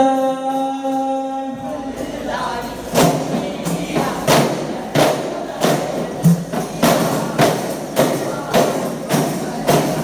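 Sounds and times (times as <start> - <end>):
frame drums beating in unison: 1.5 - 10.0.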